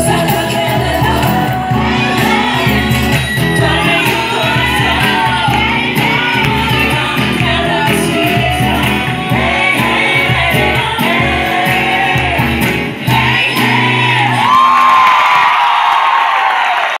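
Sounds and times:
live pop band playing: 0:00.0 - 0:15.3
singers holding a long note: 0:00.0 - 0:15.4.

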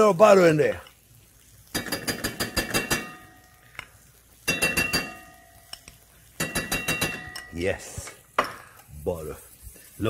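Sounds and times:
metal spoon clinking on cookware: 0:01.7 - 0:07.6.

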